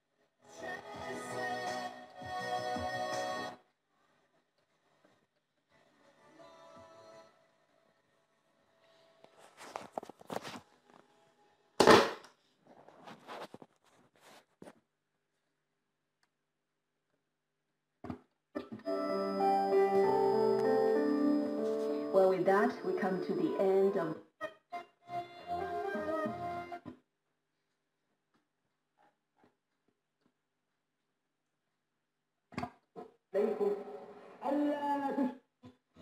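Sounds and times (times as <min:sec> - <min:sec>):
music from radio loudspeaker: 0:00.4 - 0:03.6, 0:05.8 - 0:07.5, 0:18.9 - 0:24.2.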